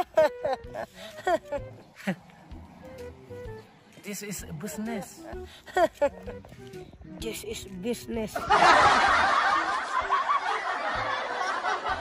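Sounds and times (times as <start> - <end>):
loud laughter: 0.0 - 2.2, 5.2 - 6.3, 8.4 - 12.0.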